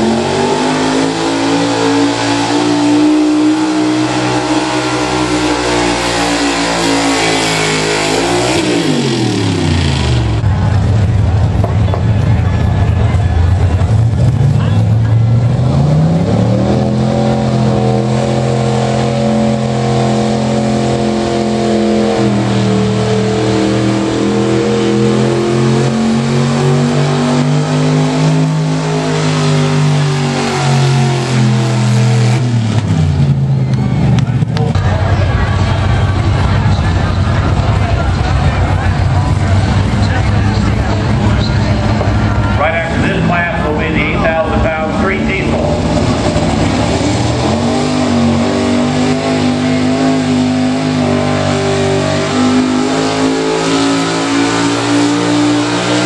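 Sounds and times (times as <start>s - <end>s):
truck engine at full throttle: 0.0s - 56.0s.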